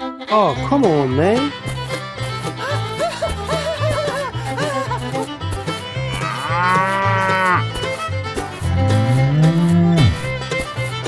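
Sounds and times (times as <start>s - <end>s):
background music with steady beat: 0.0s - 11.0s
cow mooing: 6.1s - 7.7s, 8.6s - 10.2s.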